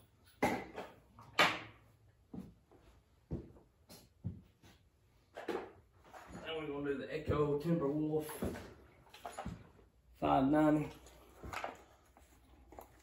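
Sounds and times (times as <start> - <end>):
handling knocks and clunks: 0.2 - 2.6, 5.3 - 9.9.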